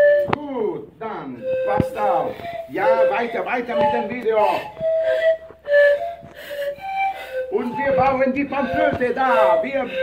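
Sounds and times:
panpipes breathy notes: 1.4 - 10.0.

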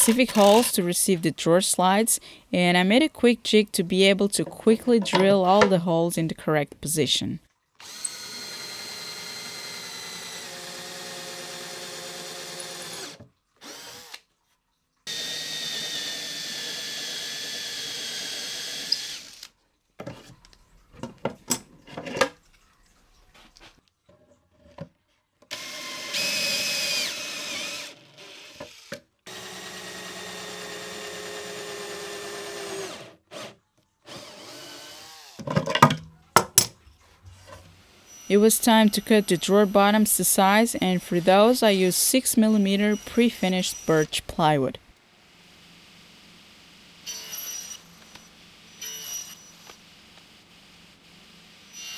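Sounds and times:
cordless drill boring into wood: 0.3 - 0.7, 7.8 - 14.2, 15.1 - 19.5, 25.5 - 35.4, 38.0 - 41.7, 42.4 - 44.2, 47.0 - 49.8, 51.6 - 51.9.

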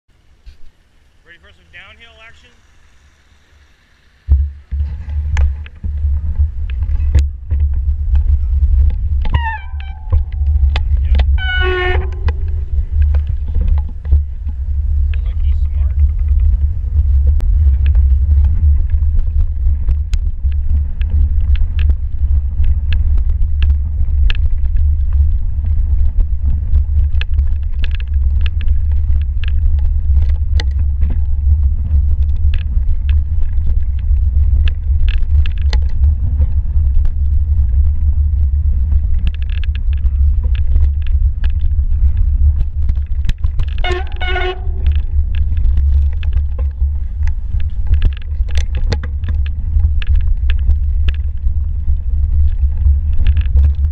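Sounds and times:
wind and tyres rumbling: 0.0 - 53.9
bike clicking and rattling: 4.3 - 53.9.

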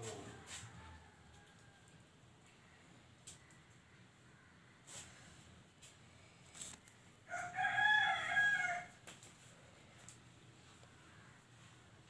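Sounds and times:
rooster crowing: 0.1 - 2.0, 7.3 - 9.0.

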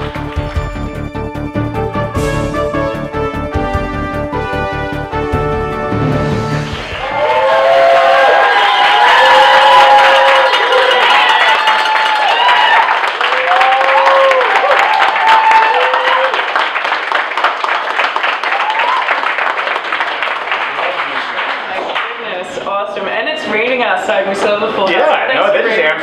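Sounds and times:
audience clapping: 0.0 - 1.7, 6.0 - 22.5
theme music sting: 0.0 - 8.6
audience whooping: 6.1 - 16.7, 18.3 - 19.8.

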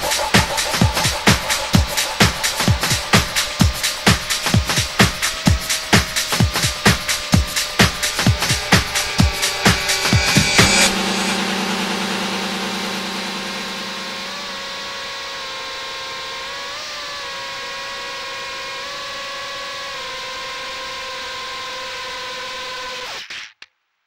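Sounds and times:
drone motors whining: 0.0 - 16.0.

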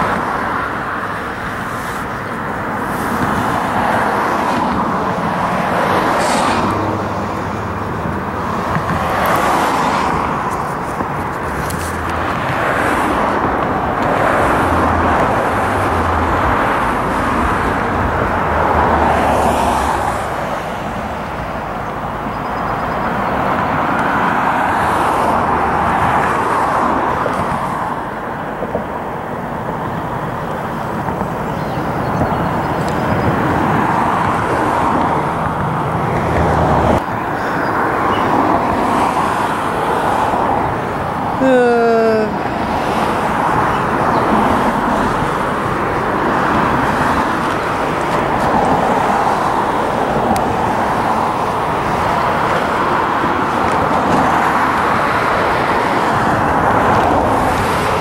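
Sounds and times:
cars passing: 0.0 - 58.0
steady traffic rumble: 0.0 - 58.0.

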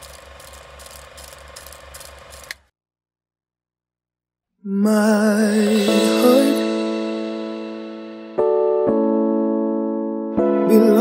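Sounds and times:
ratchet and gear whirring: 0.0 - 2.7.

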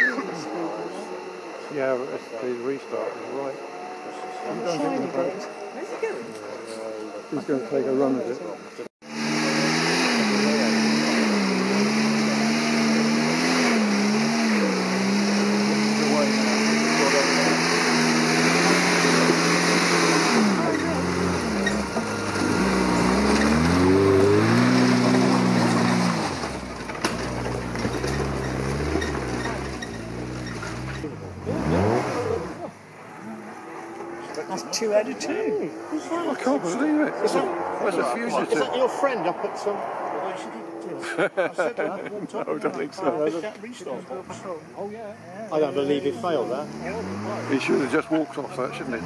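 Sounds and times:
car engine revving hard: 9.0 - 41.4, 46.1 - 49.0.

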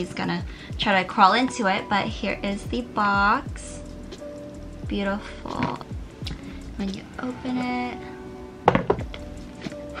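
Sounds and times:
background music: 0.0 - 10.0
jewellery box dull thunks: 8.7 - 9.2.

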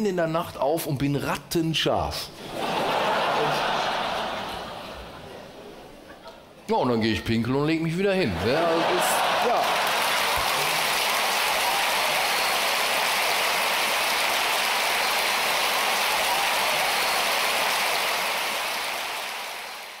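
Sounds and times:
large audience applauding: 8.3 - 20.0.

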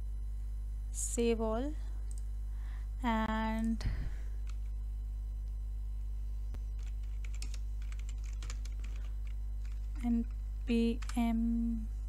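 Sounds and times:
steady low hum: 0.0 - 12.0
keyboard keys clicking: 6.8 - 10.4.

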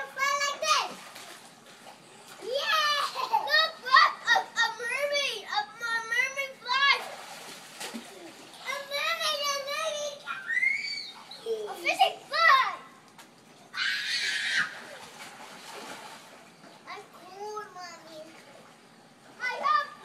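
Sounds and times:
children calling and playing: 0.0 - 1.4, 2.2 - 7.2, 7.9 - 15.2, 16.8 - 20.0
water splash: 6.9 - 8.8, 14.5 - 16.5.

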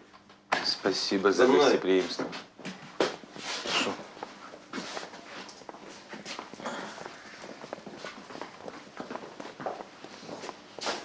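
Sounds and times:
footsteps on hard floor: 2.0 - 11.0.

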